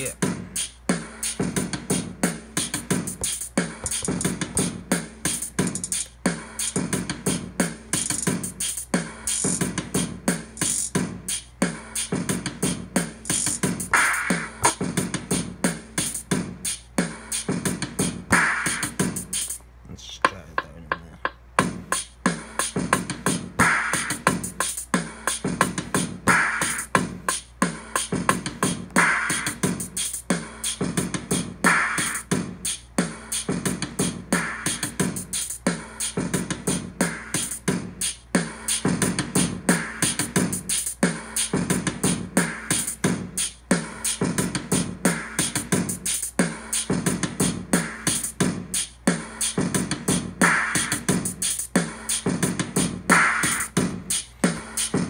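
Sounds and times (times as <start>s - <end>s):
hip-hop drum machine beat: 0.0s - 55.0s.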